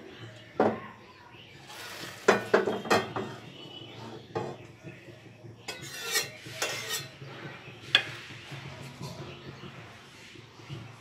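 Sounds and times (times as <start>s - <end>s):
dishes and utensils clinking: 1.8s - 4.6s, 5.6s - 9.3s.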